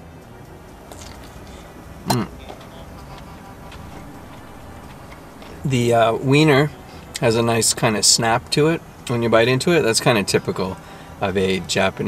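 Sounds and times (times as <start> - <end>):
quiet background music: 0.0 - 12.0
steady low hum: 0.0 - 12.0
man chewing: 3.0 - 5.7.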